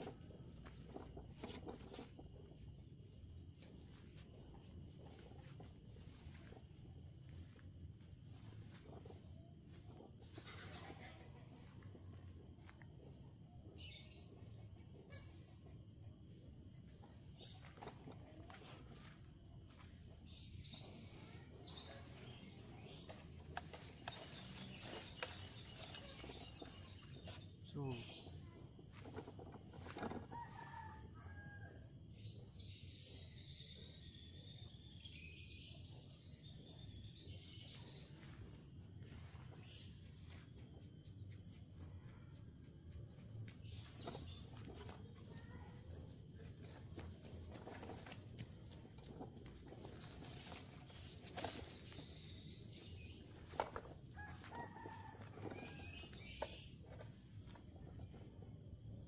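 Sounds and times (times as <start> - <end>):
small bird chirping: 0.0 - 59.0
distant rooster crowing: 30.2 - 32.0, 54.1 - 56.4.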